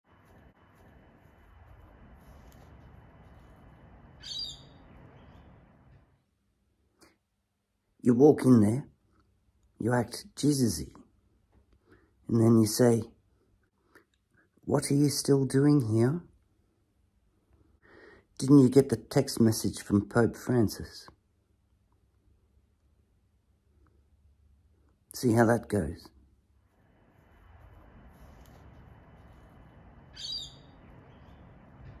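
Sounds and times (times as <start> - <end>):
faint outdoor background noise: 0.0 - 32.0
high-pitched bird call: 4.2 - 5.5, 30.1 - 31.4.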